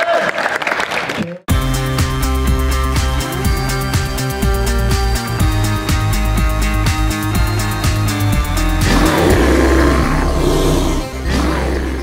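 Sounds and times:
bear-like roar: 8.8s - 12.0s
low rumble: 8.8s - 12.0s.

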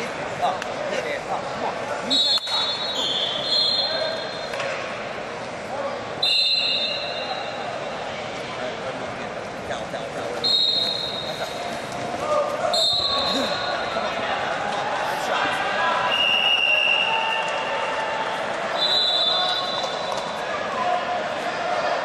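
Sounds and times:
crowd chatter echoing in hall: 0.0s - 22.0s
referee whistle blasts: 2.1s - 4.5s, 6.2s - 7.5s, 10.4s - 11.3s, 12.7s - 13.8s, 16.1s - 17.5s, 18.7s - 20.2s.

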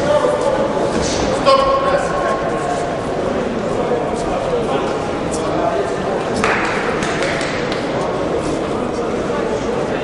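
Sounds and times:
crowd voices in a hall: 0.0s - 10.0s.

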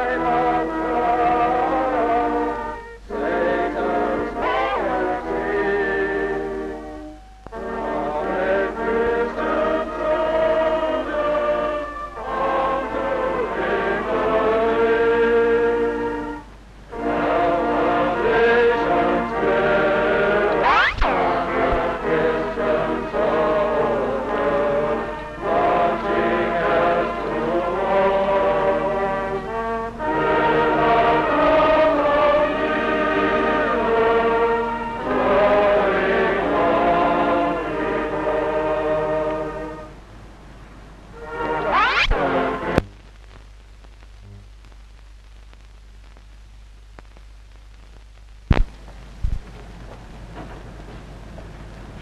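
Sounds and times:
men singing a hymn: 0.0s - 6.7s, 7.7s - 16.2s, 17.0s - 39.9s
faint low hum: 0.0s - 52.0s.

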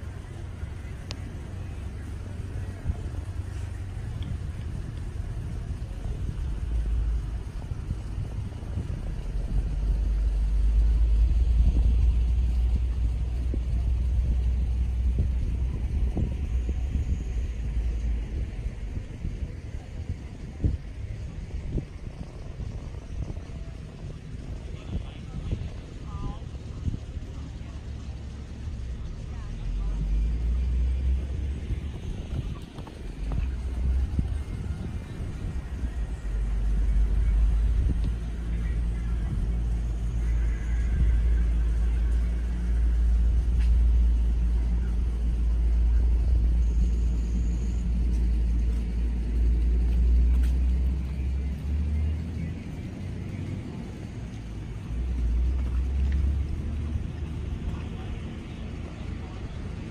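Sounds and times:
faint voices: 0.0s - 59.9s
low uneven rumble: 0.0s - 59.9s.

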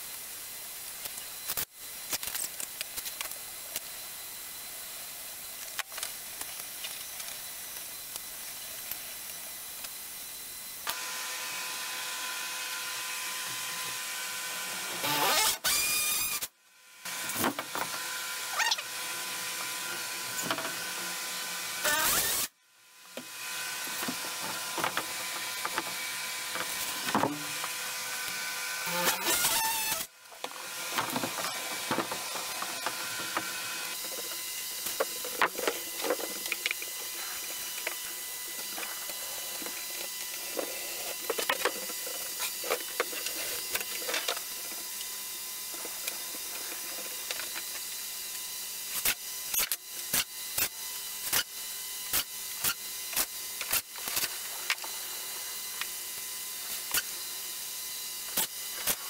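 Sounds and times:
box fan humming: 3.2s - 47.7s
cordless drill driving screws: 10.8s - 22.5s, 23.1s - 45.1s.

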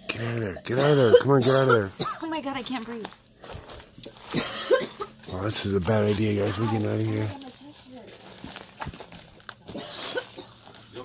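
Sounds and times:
woman coughing: 0.7s - 2.4s, 4.2s - 5.4s, 9.7s - 10.6s
woman speaking: 2.1s - 3.2s, 6.6s - 8.4s.

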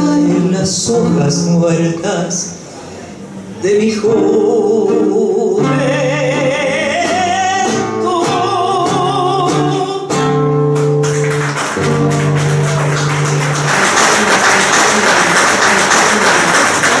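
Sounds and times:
tango accompaniment chords: 0.0s - 17.0s
woman singing: 3.7s - 10.1s
audience applause: 10.8s - 17.0s.

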